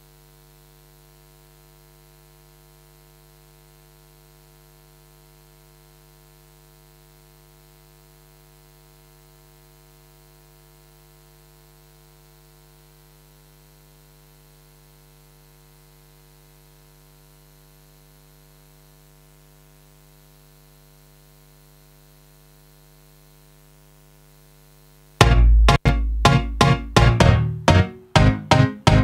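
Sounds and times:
faint mains hum: 0.0s - 27.8s.

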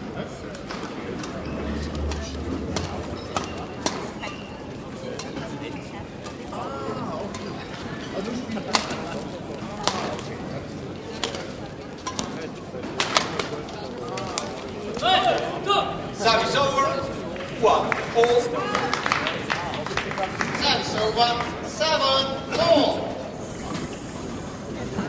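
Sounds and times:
indoor crowd murmur: 0.0s - 25.0s.

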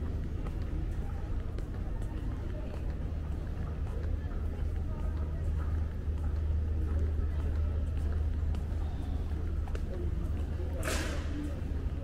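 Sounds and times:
distant indistinct voices: 0.0s - 12.0s.

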